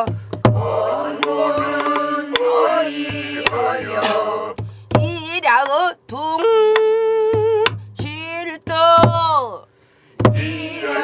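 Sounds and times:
barrel drum strokes: 0.0 - 5.2, 10.2 - 11.0
woman singing: 8.0 - 9.6.

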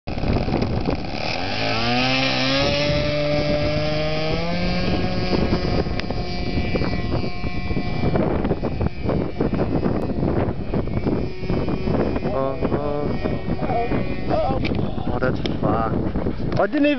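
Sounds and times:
model airplane motor: 0.1 - 16.9
wind buffeting microphone: 0.1 - 16.9.

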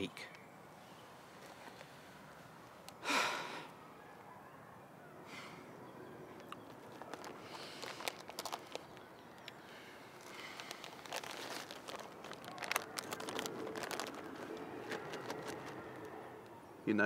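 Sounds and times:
plastic packet crinkling: 6.4 - 16.2.

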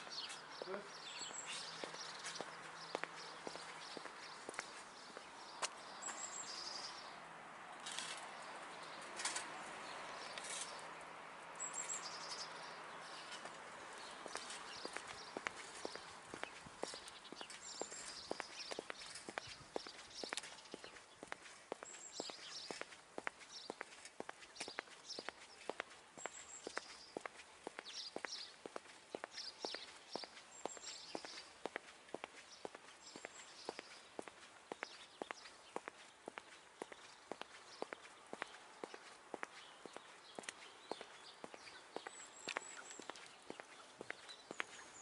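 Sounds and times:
bird chirping: 0.0 - 7.2, 11.5 - 45.0
footsteps on brick path: 0.0 - 45.0.

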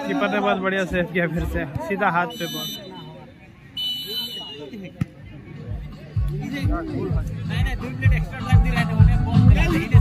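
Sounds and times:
referee's whistle: 2.3 - 3.2.

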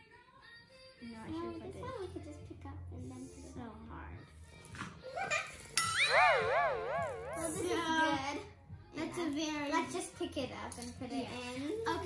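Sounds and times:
wobbling electronic tone: 5.8 - 8.4.

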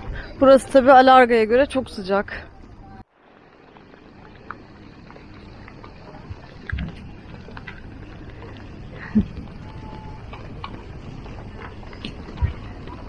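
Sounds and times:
low rumble with hiss: 0.0 - 13.0.

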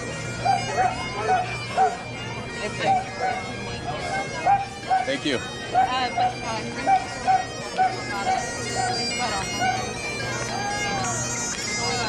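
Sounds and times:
bagpipes playing: 0.0 - 12.0.

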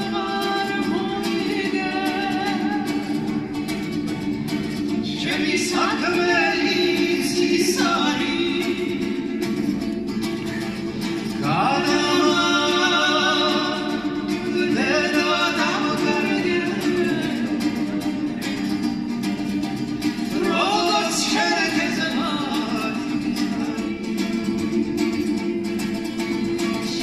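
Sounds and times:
plucked lute: 0.0 - 27.0
lead voice singing melody: 4.9 - 9.8, 10.6 - 18.8, 20.2 - 24.5.

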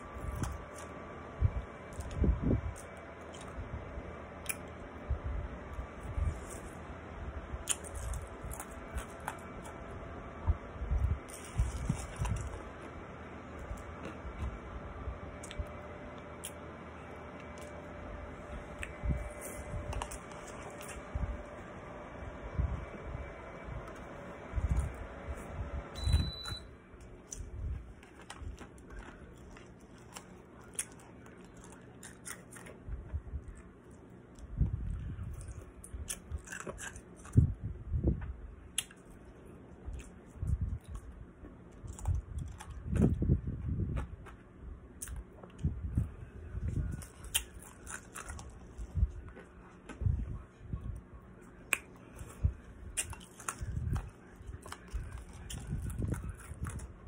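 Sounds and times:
ice being chewed: 7.6 - 9.8, 10.9 - 12.9, 18.8 - 21.2, 26.1 - 32.8, 33.4 - 37.5, 46.7 - 50.0, 51.4 - 57.0
faint thin beep: 26.0 - 26.7.

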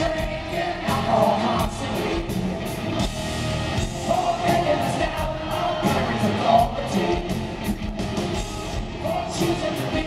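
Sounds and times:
live hard rock band: 0.0 - 10.0.

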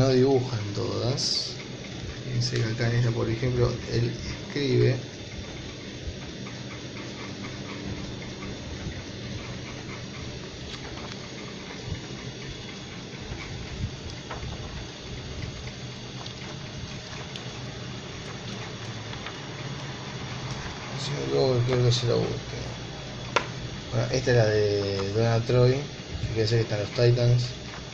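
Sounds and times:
electric fan whirring: 0.0 - 27.9
low motor hum: 0.0 - 27.9.

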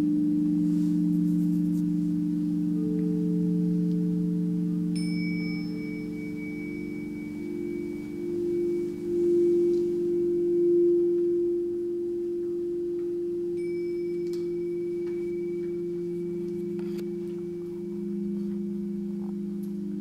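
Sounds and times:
crystal singing bowls: 0.0 - 20.0
faint high ringing tone: 0.0 - 20.0.

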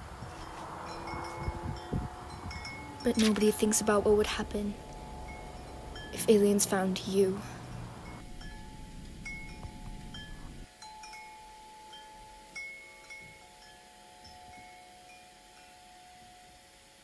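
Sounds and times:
low background rumble: 0.0 - 10.7
soft chime tones: 0.3 - 16.7.

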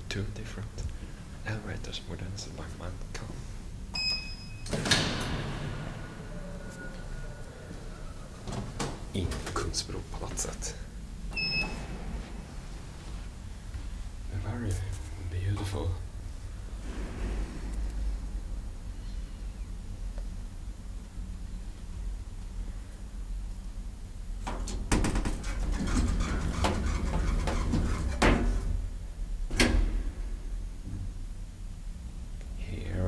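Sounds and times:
low background rumble: 0.0 - 33.0
short electronic elevator beep: 11.4 - 11.8.

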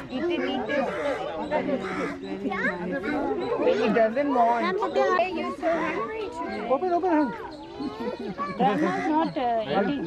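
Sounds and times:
children chattering: 0.0 - 10.0.

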